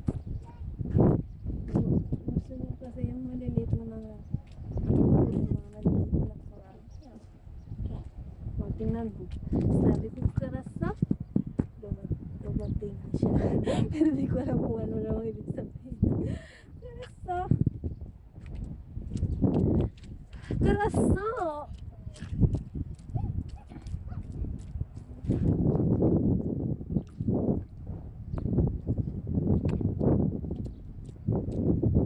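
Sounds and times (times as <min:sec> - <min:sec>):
wet mud squelching: 0:18.4 - 0:25.7.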